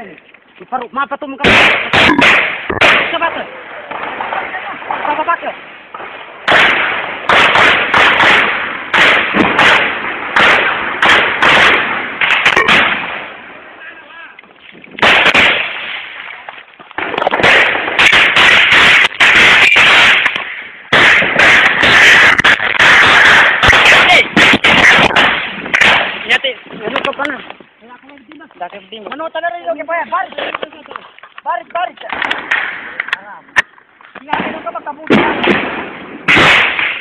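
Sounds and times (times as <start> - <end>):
heavy rapid gunfire: 1.4 - 5.3, 6.4 - 13.4, 15.0 - 15.9, 17.0 - 26.5, 34.4 - 37.0.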